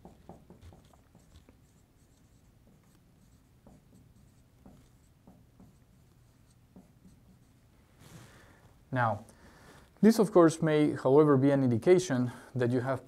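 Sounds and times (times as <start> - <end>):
marker scratching on whiteboard: 0.0 - 7.8.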